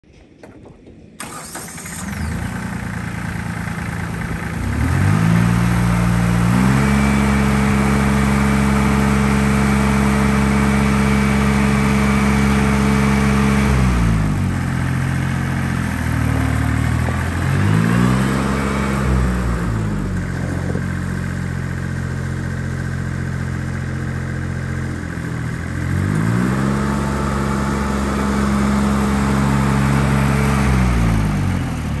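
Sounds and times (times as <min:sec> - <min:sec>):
tractor diesel engine running: 0:00.2 - 0:32.0.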